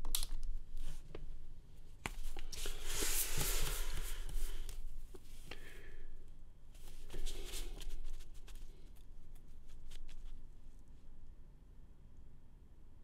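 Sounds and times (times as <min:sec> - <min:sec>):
paper rustling and sliding: 0:02.2 - 0:04.9, 0:06.8 - 0:08.8.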